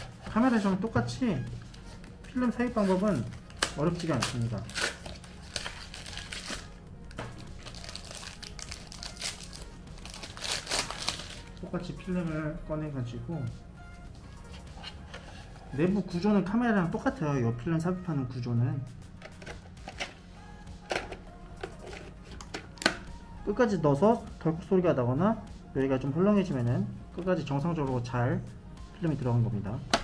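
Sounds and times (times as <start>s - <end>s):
faint background music: 0.0s - 30.0s
foil pouch crinkling: 3.1s - 6.7s, 7.4s - 11.6s
plastic film pack clicks: 3.4s - 9.6s, 22.4s - 23.1s.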